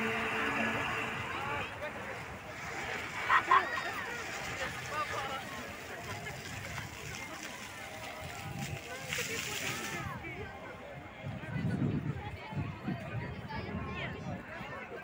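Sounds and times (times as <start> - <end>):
fountain jets hissing: 0.0 - 11.0
crowd chatter: 0.0 - 15.0.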